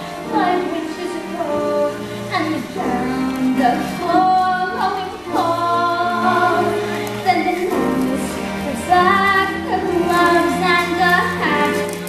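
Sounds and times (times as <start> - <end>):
music: 0.0 - 12.0
women singing together: 0.2 - 11.7.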